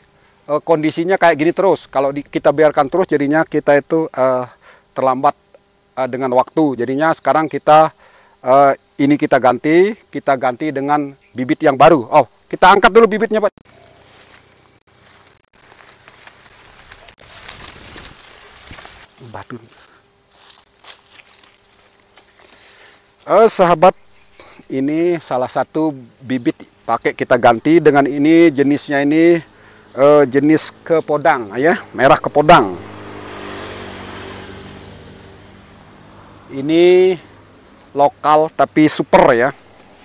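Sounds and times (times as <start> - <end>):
crickets chirping drone: 0.0 - 40.0
footsteps rustling in grass: 13.7 - 23.2, 39.6 - 40.0
vehicle engine passing: 30.0 - 37.8, 39.5 - 40.0.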